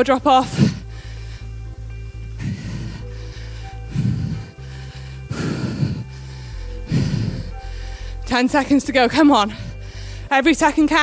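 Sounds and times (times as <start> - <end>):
workout music with bass line: 0.0 - 11.0
person breathing hard: 0.4 - 8.4, 9.4 - 10.3.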